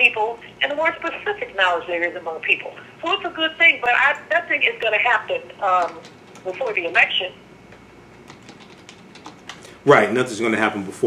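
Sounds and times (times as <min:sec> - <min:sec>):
computer keyboard typing: 0:05.6 - 0:07.1, 0:08.1 - 0:09.7
man's voice: 0:09.8 - 0:11.0.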